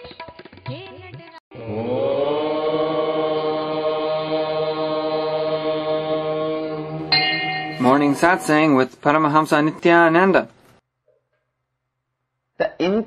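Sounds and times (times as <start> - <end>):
low drone: 1.6 - 8.9
person chanting a held note: 1.8 - 9.0.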